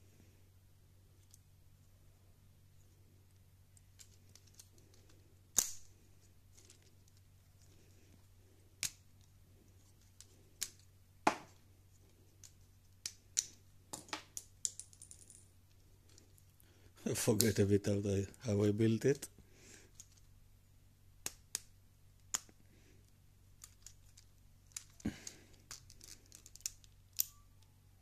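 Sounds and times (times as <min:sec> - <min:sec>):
faint low hum: 0:00.0 - 0:28.0
plastic parts clicking together: 0:03.8 - 0:05.9, 0:23.6 - 0:27.4.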